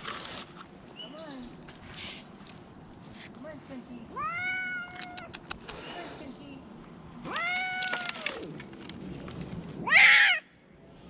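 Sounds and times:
cat meowing: 0:04.2 - 0:05.3, 0:07.2 - 0:08.3.

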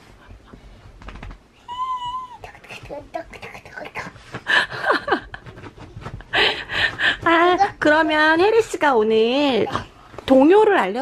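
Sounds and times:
child squealing like a horse: 0:01.7 - 0:02.4
child vocal sounds: 0:01.7 - 0:04.2.

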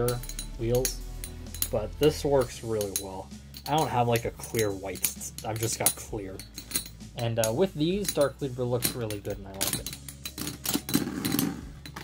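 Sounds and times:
spinning tops clicking and knocking: 0:00.0 - 0:12.0
spinning tops grinding rattle: 0:09.1 - 0:12.0.

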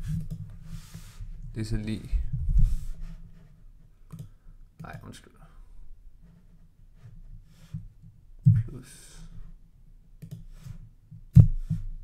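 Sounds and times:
computer mouse clicks: 0:04.1 - 0:05.0, 0:10.2 - 0:10.5.

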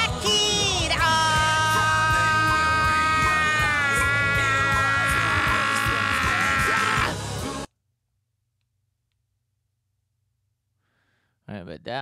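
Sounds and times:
singer holding long note: 0:01.0 - 0:07.2.

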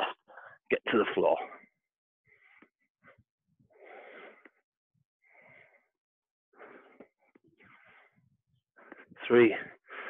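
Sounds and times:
man breathing hard: 0:02.3 - 0:04.6, 0:05.2 - 0:10.0.

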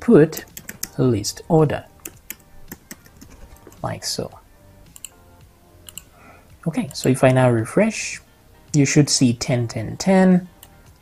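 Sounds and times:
keyboard key clicks: 0:00.4 - 0:01.0, 0:02.0 - 0:03.8.

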